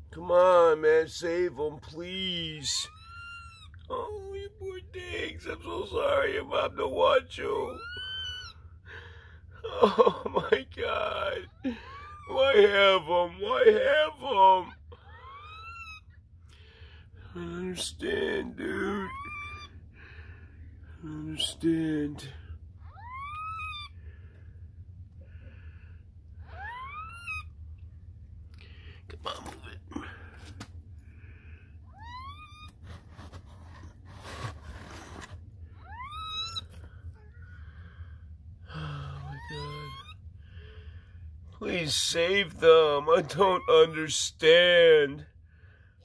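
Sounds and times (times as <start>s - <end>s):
kitten mewing: 11.4s - 16.2s, 18.3s - 19.8s, 21.1s - 24.0s, 26.4s - 27.5s, 31.9s - 37.6s, 38.6s - 40.3s.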